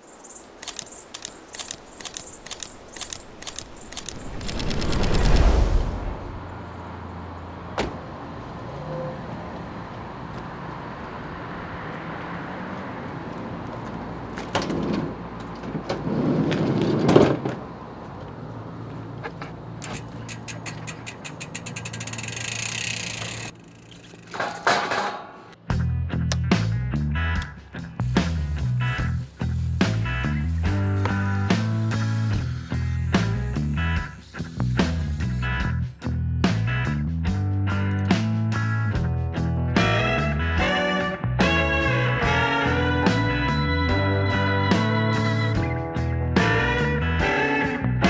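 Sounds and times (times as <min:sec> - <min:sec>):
sharp clicks: 0:00.4 - 0:05.9, 0:19.8 - 0:24.0
rush of noise: 0:01.2 - 0:06.7
van sliding door: 0:14.5 - 0:17.8.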